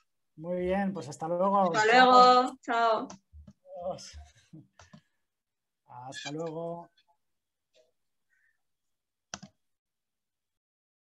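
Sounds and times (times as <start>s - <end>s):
computer mouse click: 9.3s - 9.6s.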